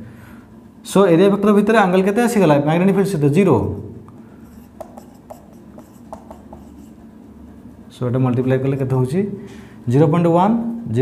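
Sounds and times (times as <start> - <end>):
marker tip squeaking on whiteboard: 4.5 - 7.0.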